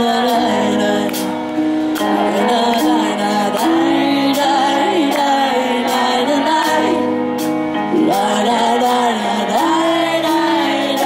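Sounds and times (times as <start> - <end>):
lead vocal singing long notes: 0.0 - 11.0
live band music: 0.0 - 11.0.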